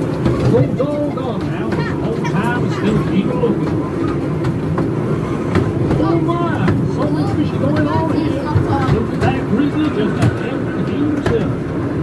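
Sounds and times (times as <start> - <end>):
voices talking: 0.0 - 11.9
ride train rumbling on track: 0.0 - 12.0.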